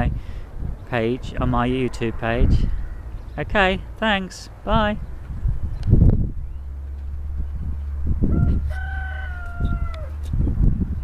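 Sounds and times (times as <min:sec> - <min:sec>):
steady low rumble: 0:00.0 - 0:11.0
rooster crowing: 0:02.7 - 0:03.2, 0:08.2 - 0:10.2.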